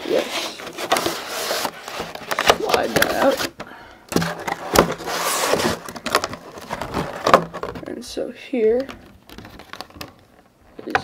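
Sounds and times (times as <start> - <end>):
plastic crinkling: 0.0 - 11.0.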